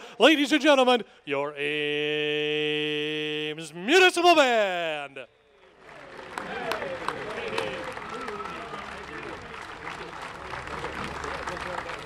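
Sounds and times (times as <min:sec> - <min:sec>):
audience applauding: 0:05.6 - 0:12.0
scattered crowd voices: 0:06.1 - 0:12.0.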